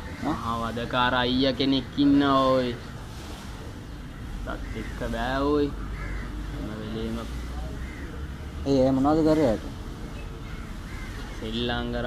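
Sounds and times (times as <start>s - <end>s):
crow cawing: 4.1s - 6.8s, 7.6s - 8.4s, 10.4s - 11.9s.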